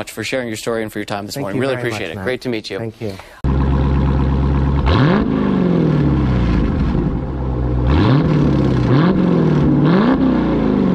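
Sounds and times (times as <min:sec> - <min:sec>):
car engine idling and revving: 0:03.4 - 0:10.9.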